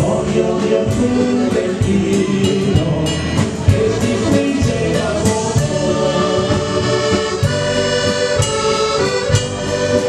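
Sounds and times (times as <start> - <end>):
voices singing along: 0.0 - 9.2
accordion-led dance band playing: 0.0 - 10.0.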